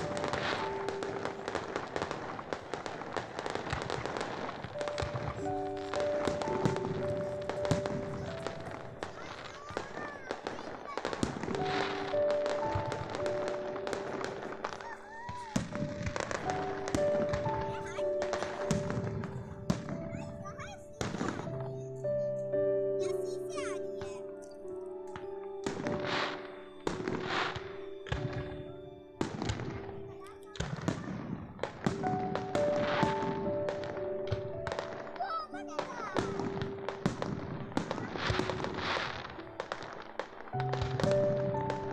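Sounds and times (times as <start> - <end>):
fireworks bangs and crackles: 0.0 - 41.9
music of long held notes: 0.0 - 41.9.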